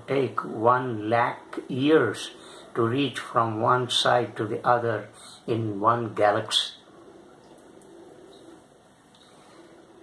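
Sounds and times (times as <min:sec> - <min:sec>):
bird cooing: 0:06.9 - 0:08.6.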